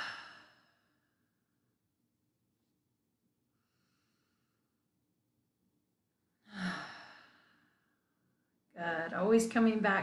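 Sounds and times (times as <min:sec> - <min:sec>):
woman exhaling deeply: 0:00.0 - 0:00.8, 0:06.4 - 0:07.6.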